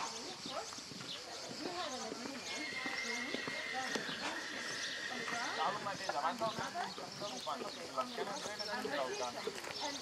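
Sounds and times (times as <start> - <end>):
horse hoofbeats on sand: 0.0 - 10.0
people talking: 0.0 - 10.0.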